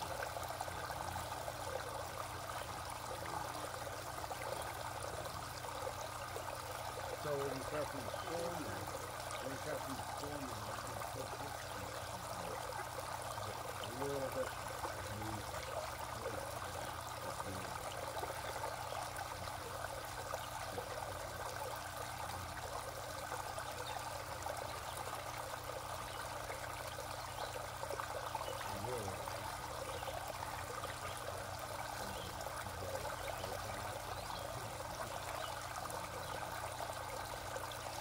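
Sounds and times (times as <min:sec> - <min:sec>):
water trickling: 0:00.0 - 0:38.0.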